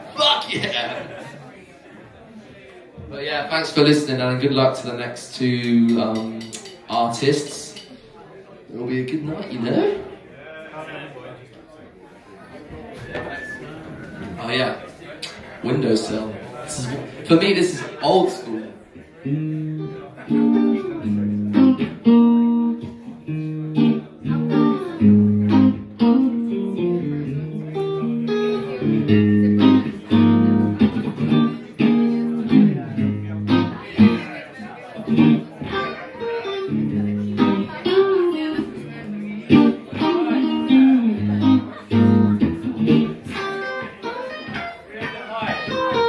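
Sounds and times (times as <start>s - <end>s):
electric guitar picking: 19.2s - 34.3s, 35.0s - 46.0s.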